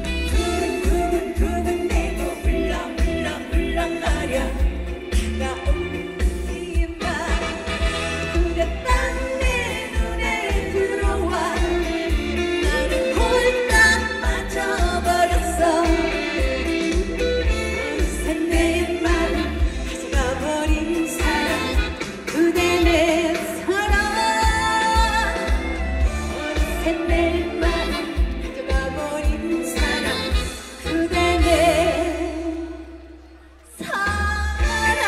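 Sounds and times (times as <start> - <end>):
backing music with pulsing bass: 0.0 - 35.0
woman singing into a microphone: 0.0 - 35.0.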